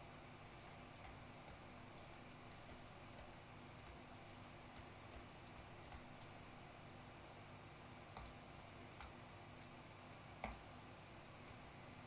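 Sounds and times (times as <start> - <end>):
faint steady hum: 0.0 - 12.0
stylus tapping on screen: 1.0 - 6.4, 10.4 - 10.7.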